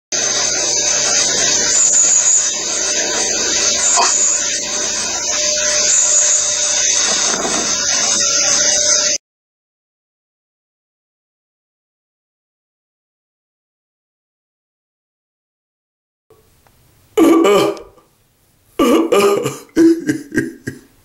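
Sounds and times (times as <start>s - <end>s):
steady loud hiss: 0.2s - 9.2s, 16.3s - 21.0s.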